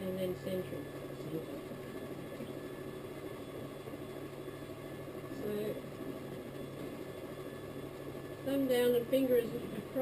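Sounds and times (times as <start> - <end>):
potter's wheel humming: 0.0 - 10.0.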